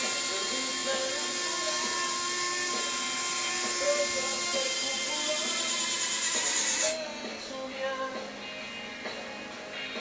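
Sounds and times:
electric motor and gearbox whine: 0:00.0 - 0:07.7.

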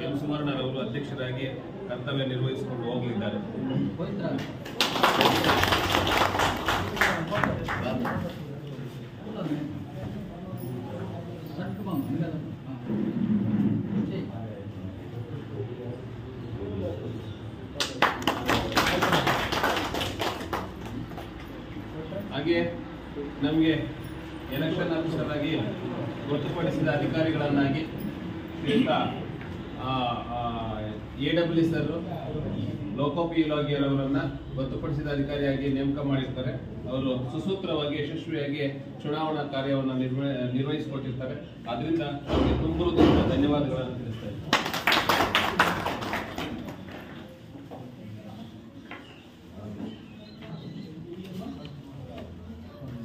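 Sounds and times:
hands clapping: 0:04.4 - 0:08.4, 0:17.8 - 0:21.6, 0:44.4 - 0:47.2.

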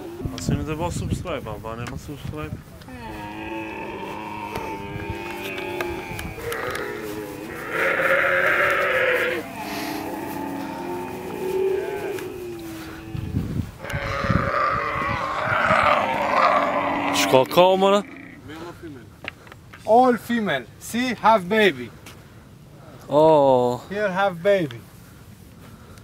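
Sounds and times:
camels calling: 0:00.0 - 0:00.8, 0:02.8 - 0:18.7.

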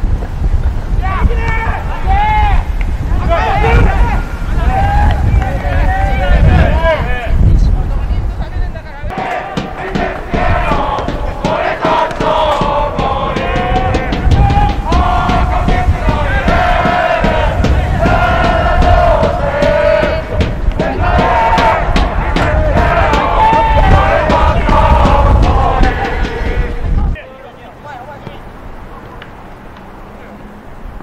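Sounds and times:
wind rumble on microphone: 0:00.0 - 0:27.2
crowd chanting and singing: 0:09.1 - 0:27.4.

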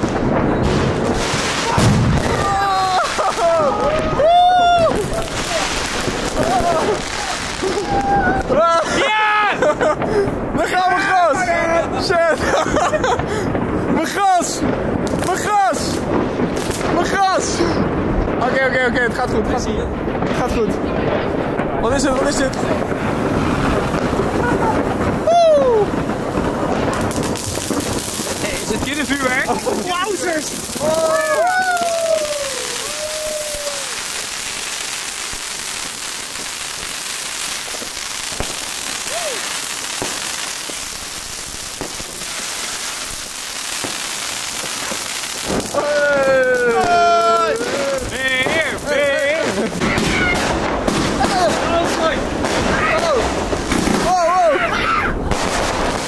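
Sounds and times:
firework crackling hiss: 0:00.0 - 0:19.2, 0:20.0 - 0:56.0
firework bangs: 0:00.0 - 0:56.0.

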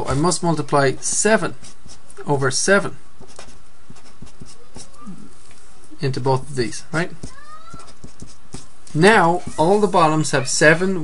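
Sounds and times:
marker squeaking on surface: 0:03.2 - 0:05.2, 0:07.0 - 0:10.2.

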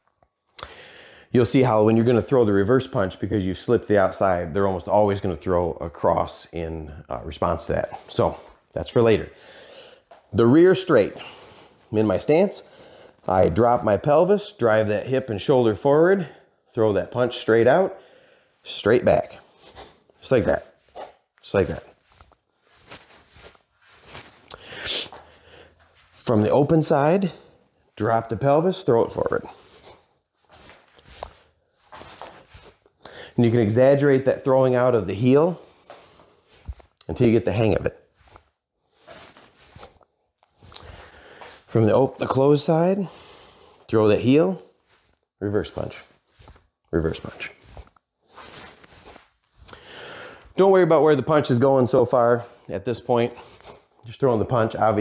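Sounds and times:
shoes scuffing on wooden floor: 0:19.5 - 0:26.3, 0:29.2 - 0:32.8
hissing shoe scrape: 0:22.0 - 0:26.3.

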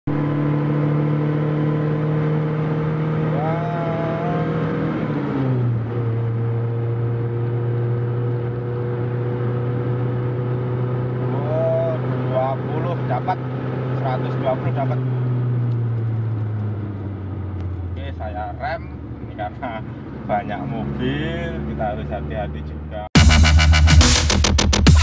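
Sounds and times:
car engine drone from inside: 0:00.1 - 0:24.4.

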